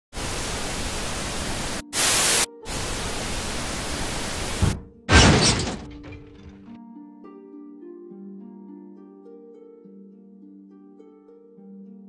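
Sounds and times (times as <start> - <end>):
static hiss: 0.1 - 4.8.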